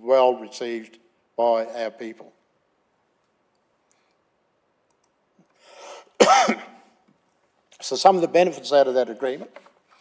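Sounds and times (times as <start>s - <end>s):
man coughing into a microphone: 6.2s - 6.9s.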